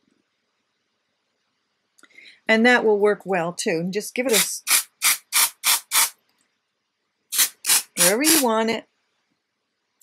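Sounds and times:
aerosol spray hissing bursts: 0:04.3 - 0:06.2, 0:07.3 - 0:08.5.

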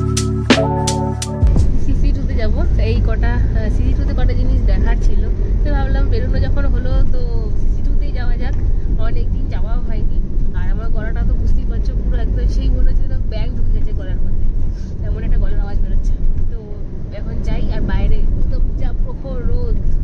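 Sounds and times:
car cabin road rumble: 0:01.4 - 0:20.0
woman talking: 0:01.6 - 0:20.0.

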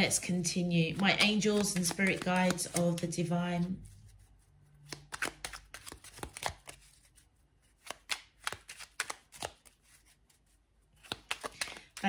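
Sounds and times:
cards being shuffled by hand: 0:00.0 - 0:12.0.

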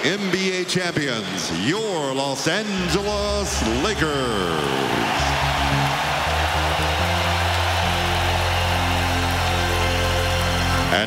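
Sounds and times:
arena crowd cheering: 0:00.0 - 0:11.0.

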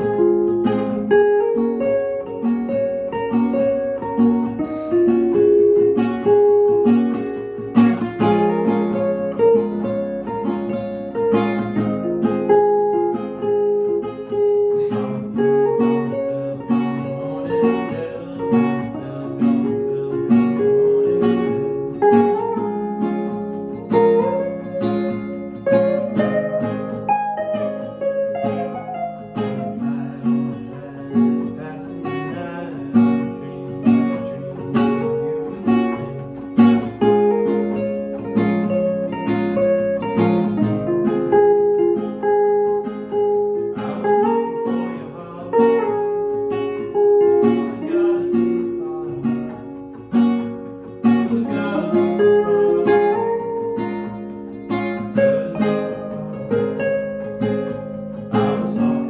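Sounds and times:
classical guitar strumming chords: 0:00.0 - 0:59.0
electric guitar picking: 0:00.0 - 0:59.0.

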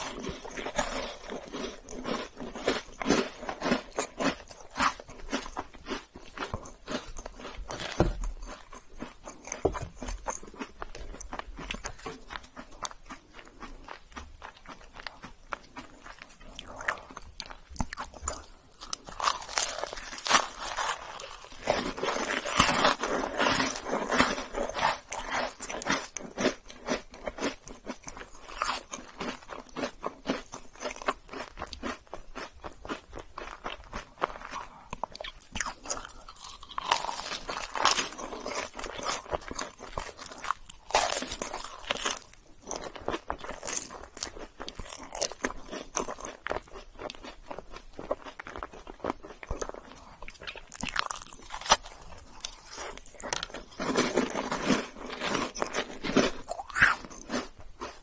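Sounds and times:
crunchy bites and chewing: 0:00.0 - 0:58.0.

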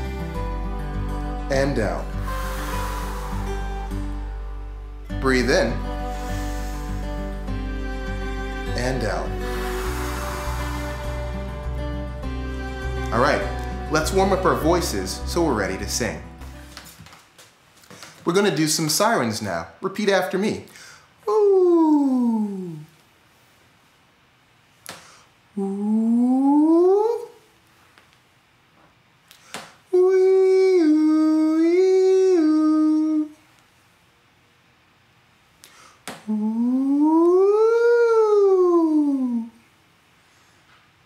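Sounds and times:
man doing vocal siren slides: 0:01.6 - 0:04.6, 0:08.8 - 0:11.8, 0:21.3 - 0:22.9, 0:25.6 - 0:27.4, 0:29.9 - 0:33.4, 0:36.2 - 0:39.6.

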